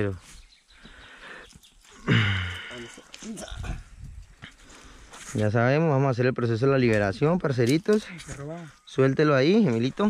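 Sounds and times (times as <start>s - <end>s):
man's short vocal sound: 2.0s - 3.8s.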